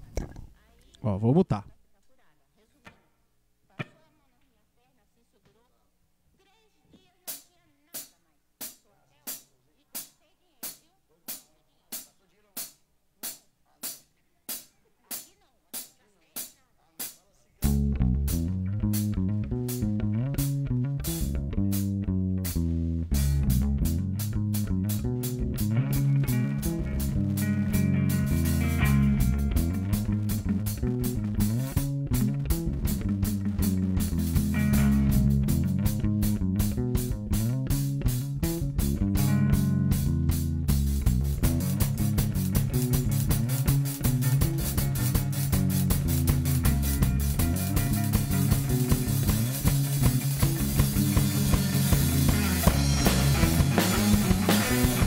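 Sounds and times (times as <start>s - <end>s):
bass guitar: 0.0s - 1.8s, 17.6s - 55.0s
drum kit: 7.3s - 55.0s
electric guitars: 17.6s - 55.0s.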